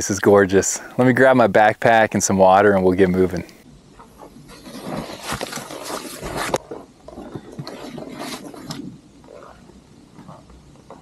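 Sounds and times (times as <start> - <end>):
backpack fabric rustling: 4.4 - 8.7.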